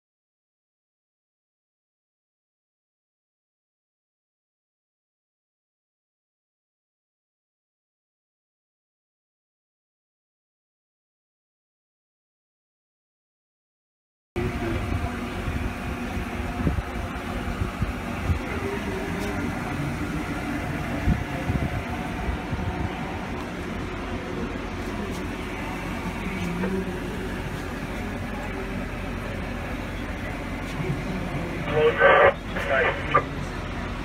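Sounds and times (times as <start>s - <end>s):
faint voices: 14.4s - 34.0s
fans and equipment humming: 14.4s - 34.0s.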